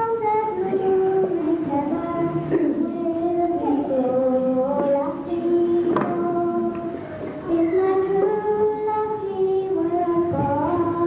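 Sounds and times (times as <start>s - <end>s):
young girl singing: 0.0s - 11.0s.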